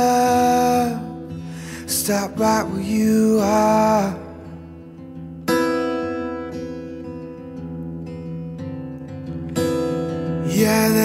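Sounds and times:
acoustic guitar chord strummed: 0.0 - 11.0.

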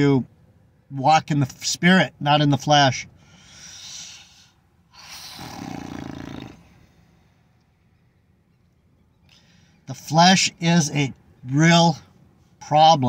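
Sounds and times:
man breathing deeply: 3.2 - 7.6, 9.3 - 9.8
sigh with low hum: 3.2 - 7.6.

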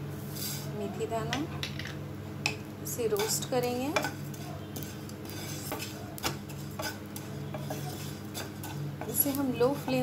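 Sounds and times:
spatula scraping seeds in pan: 0.2 - 0.7, 3.0 - 10.0.

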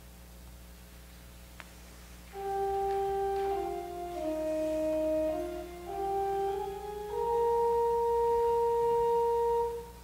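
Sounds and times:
steady pure musical tone: 1.6 - 10.0.

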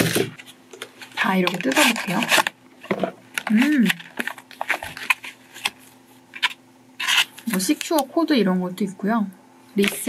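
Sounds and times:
paper rustling: 3.4 - 7.6.

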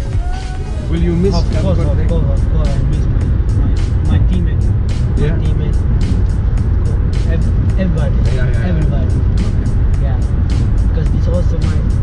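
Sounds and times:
road rumble inside car: 0.0 - 12.0.

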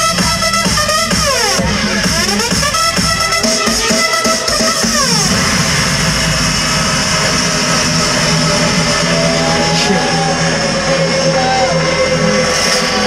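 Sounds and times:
electronic dance music: 0.0 - 13.0
synth tone sliding downward: 5.0 - 13.0
held low bass note: 5.1 - 13.0
hissing noise wash: 5.1 - 13.0.

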